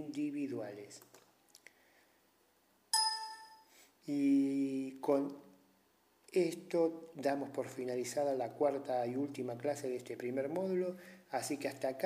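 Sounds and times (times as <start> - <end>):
bright chime: 3.0 - 3.7.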